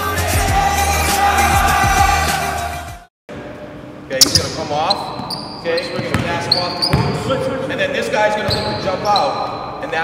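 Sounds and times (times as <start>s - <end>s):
shoe squeal: 4.2s - 7.3s, 8.3s - 9.8s.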